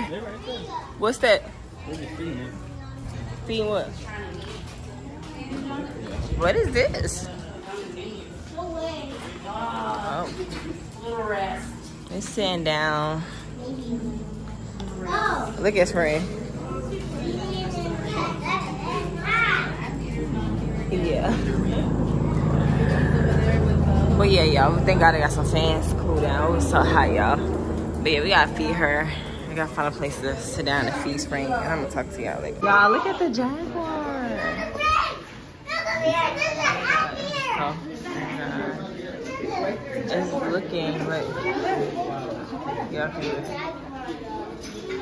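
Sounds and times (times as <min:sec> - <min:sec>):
steady low hum: 0:00.0 - 0:34.8
children chattering: 0:00.0 - 0:45.0.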